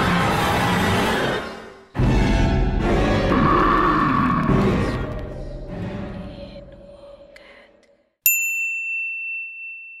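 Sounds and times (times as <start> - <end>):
bright bell ding: 8.2 - 10.0.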